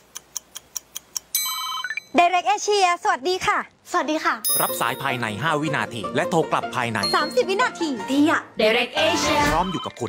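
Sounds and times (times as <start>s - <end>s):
telephone ringtone: 4.5s - 5.2s.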